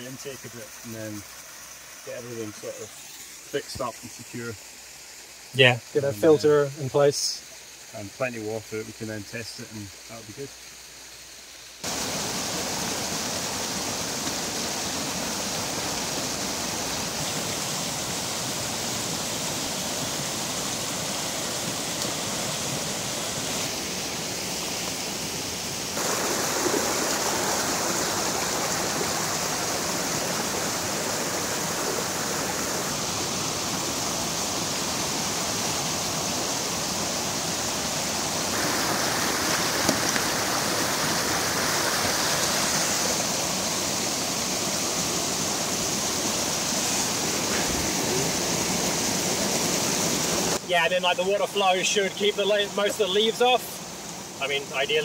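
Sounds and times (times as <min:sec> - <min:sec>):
stream rushing over rocks: 0:00.0 - 0:10.4, 0:11.8 - 0:55.0.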